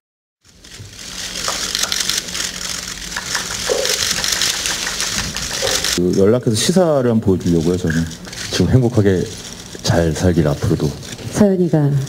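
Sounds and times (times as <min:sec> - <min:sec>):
steady hiss: 0:00.4 - 0:12.0.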